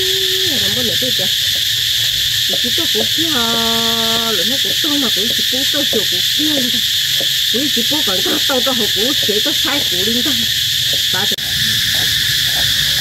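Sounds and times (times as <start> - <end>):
loud steady high hiss: 0.0 - 13.0.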